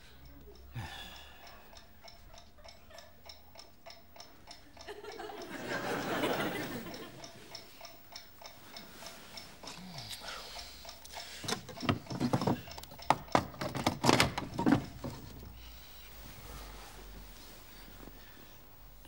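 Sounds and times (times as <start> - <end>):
alarm clock ticking: 0.0 - 9.8, 10.4 - 15.6
glass clinks and knocks: 11.5 - 15.4.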